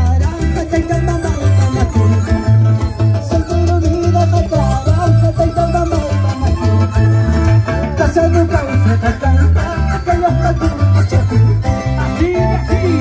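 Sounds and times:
live band music: 0.0s - 13.0s
pulsing bass beat: 0.0s - 13.0s.

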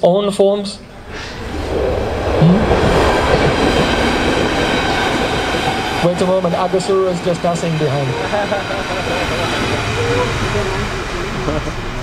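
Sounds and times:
faint laughter: 8.2s - 10.4s.

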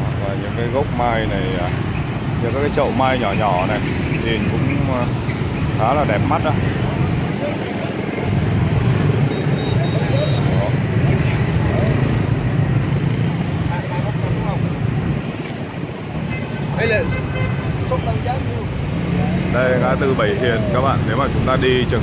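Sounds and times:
motorbikes passing: 0.0s - 22.0s
people's voices: 2.4s - 22.0s.

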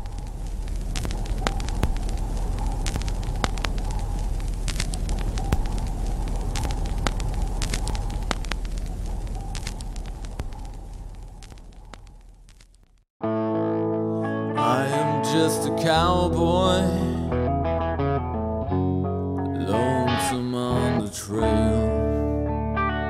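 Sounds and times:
campfire crackling and popping: 0.0s - 13.1s.

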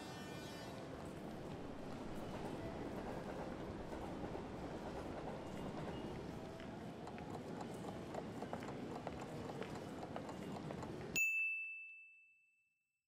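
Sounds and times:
bright ding chime: 11.2s - 12.7s.

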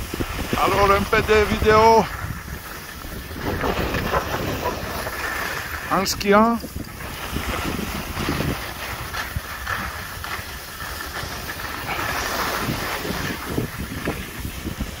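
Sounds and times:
skis scraping over snow: 0.0s - 15.0s
wind rumbling on microphone: 0.0s - 15.0s.

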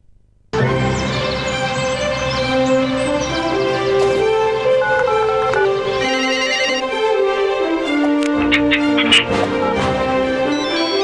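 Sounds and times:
music: 0.6s - 11.0s
trilling phone ringtone: 4.8s - 6.9s.

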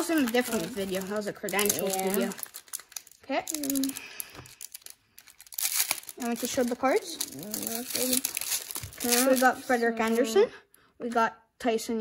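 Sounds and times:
foil pack tearing open: 0.0s - 9.7s
foil wrapper crinkling: 0.0s - 10.2s.

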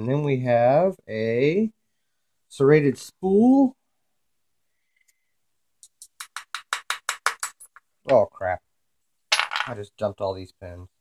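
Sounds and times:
metal pins clattering on workbench: 9.3s - 9.8s.

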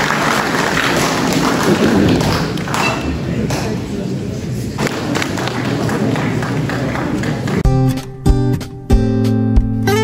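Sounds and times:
crowd murmur: 0.0s - 7.7s.

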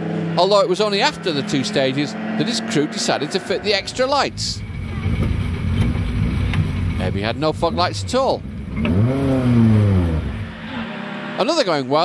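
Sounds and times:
rally car engine running: 0.0s - 11.6s.

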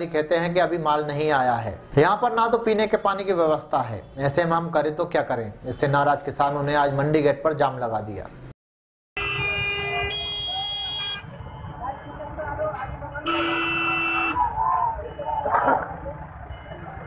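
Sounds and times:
vehicle horn blasts: 9.2s - 12.2s, 13.2s - 14.4s
crowd voices: 9.9s - 17.0s.

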